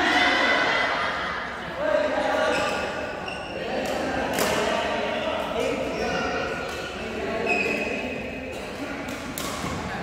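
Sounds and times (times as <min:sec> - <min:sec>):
racket hitting shuttlecock: 0:03.8 - 0:04.7, 0:08.7 - 0:10.0.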